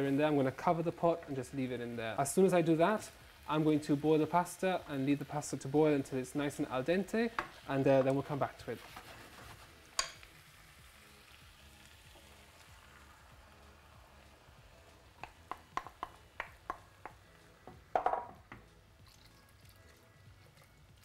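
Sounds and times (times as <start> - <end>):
food sizzling in a pan: 0.0 - 21.0
wooden spoon knocking on pan: 15.2 - 18.7.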